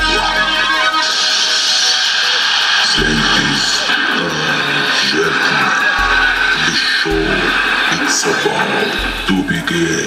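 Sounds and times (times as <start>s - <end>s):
hall crowd voices: 0.0s - 10.0s
music: 0.0s - 10.0s
person speaking: 2.8s - 10.0s.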